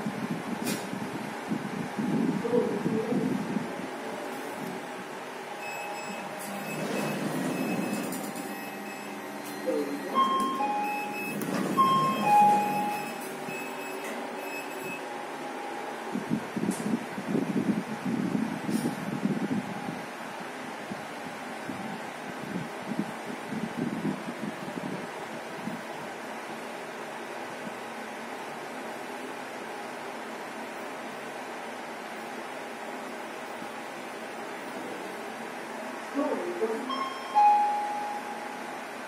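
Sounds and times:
lift machinery humming: 0:00.0 - 0:18.8
short electronic beeps: 0:05.6 - 0:15.1, 0:36.9 - 0:38.7.

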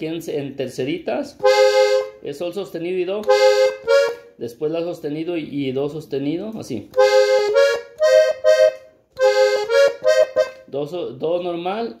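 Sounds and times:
piano accordion playing: 0:01.4 - 0:02.2, 0:03.2 - 0:04.4, 0:06.9 - 0:10.7.

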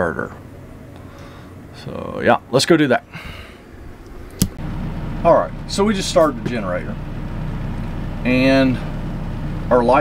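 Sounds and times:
generator humming: 0:00.0 - 0:10.0
sharp click: 0:04.0 - 0:04.6.

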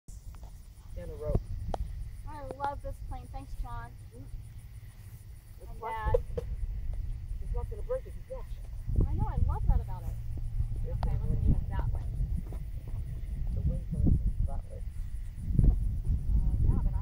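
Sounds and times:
wind buffeting microphone: 0:00.2 - 0:03.9, 0:05.7 - 0:17.0.

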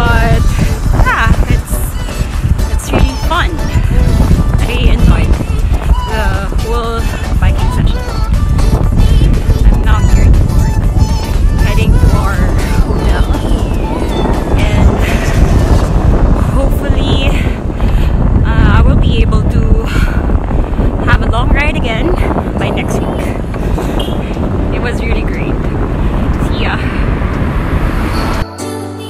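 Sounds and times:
woman's voice: 0:00.0 - 0:02.0, 0:02.7 - 0:03.9, 0:04.6 - 0:08.2, 0:09.0 - 0:10.4, 0:11.6 - 0:13.7, 0:14.4 - 0:15.4, 0:16.4 - 0:20.2, 0:21.0 - 0:23.4, 0:24.7 - 0:25.7, 0:26.4 - 0:27.0
wind buffeting microphone: 0:00.0 - 0:28.4.

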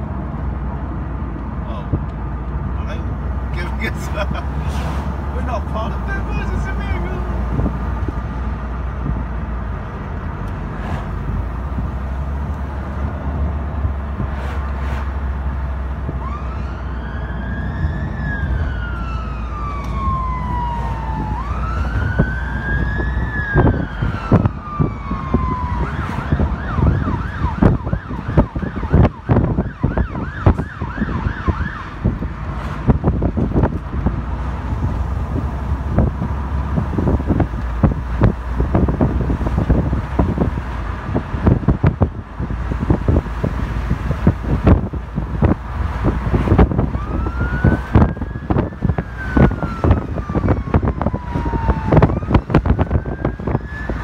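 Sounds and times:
low road rumble: 0:00.0 - 0:54.0
fire engine siren wailing: 0:15.7 - 0:32.4, 0:34.7 - 0:54.0
siren fast yelp: 0:46.9 - 0:54.0.

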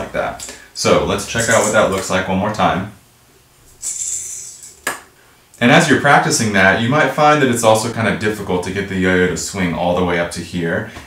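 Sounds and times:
yo-yo whirring: 0:01.3 - 0:02.0, 0:03.6 - 0:05.0.

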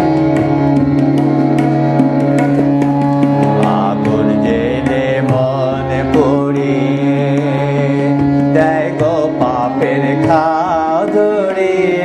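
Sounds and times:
light tabla strokes: 0:00.0 - 0:12.0
steady drone: 0:00.0 - 0:12.0
wavering melody with vibrato: 0:00.0 - 0:12.0.

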